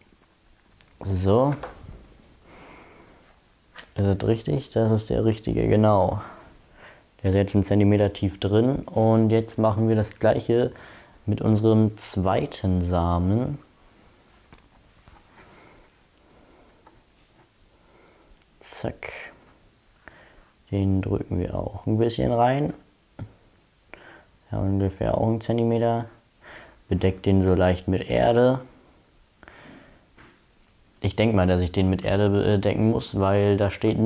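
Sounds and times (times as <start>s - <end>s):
person speaking: 0.8s - 2.6s, 3.8s - 6.5s, 7.2s - 13.8s, 18.6s - 19.5s, 20.6s - 23.4s, 31.0s - 34.0s.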